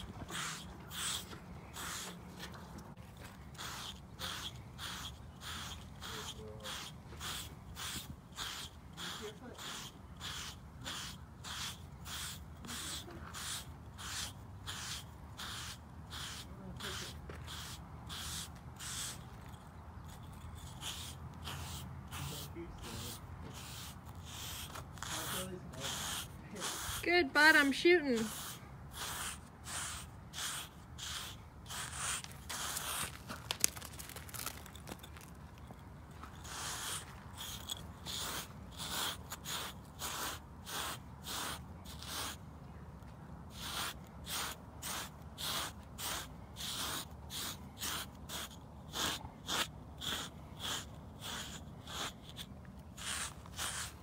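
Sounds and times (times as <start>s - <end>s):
grooming stone scraping horse coat: 0.0s - 42.4s, 43.6s - 54.0s.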